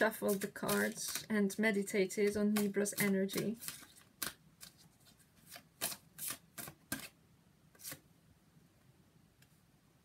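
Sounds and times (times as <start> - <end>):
cards being shuffled: 0.1 - 1.3, 2.2 - 7.2, 7.8 - 8.0.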